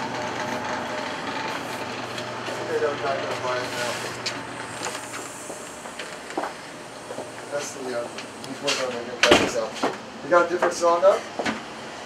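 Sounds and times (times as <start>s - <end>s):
steady mechanical hum: 0.0s - 12.0s
even hiss: 3.6s - 9.7s.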